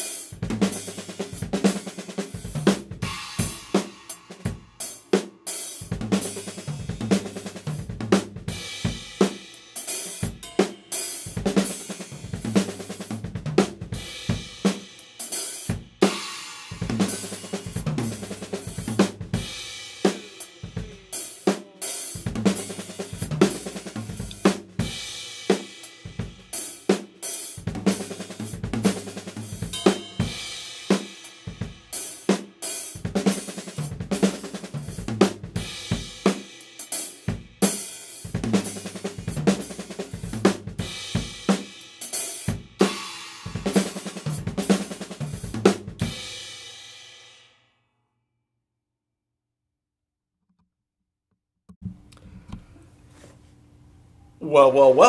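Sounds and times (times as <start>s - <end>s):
cymbals: 0.0s - 7.9s, 13.9s - 35.0s
bass drum: 5.9s - 9.0s, 11.4s - 14.6s, 16.8s - 19.6s, 22.2s - 25.1s, 27.6s - 30.5s, 38.3s - 41.5s, 43.5s - 46.2s
snare drum strokes: 22.2s - 24.8s.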